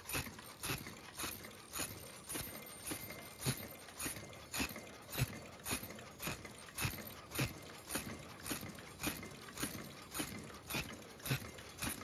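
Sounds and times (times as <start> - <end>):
machine press knocking rhythmically: 0.0 - 12.0.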